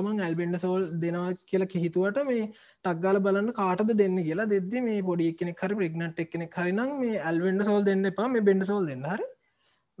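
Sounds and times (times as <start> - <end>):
lecturer talking: 0.0 - 9.4.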